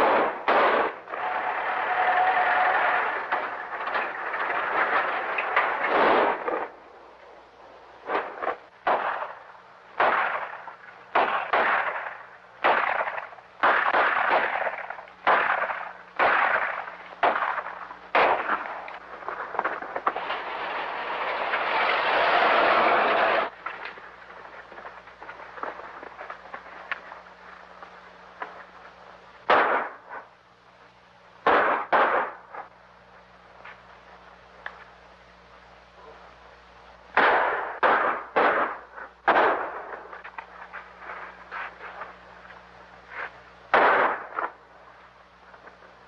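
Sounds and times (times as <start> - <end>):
echoing gunshots: 0.0 - 6.8, 8.0 - 23.5, 29.4 - 30.3, 31.4 - 32.8, 37.1 - 40.2, 43.7 - 44.6
rushing noise: 0.0 - 7.1, 18.4 - 23.6.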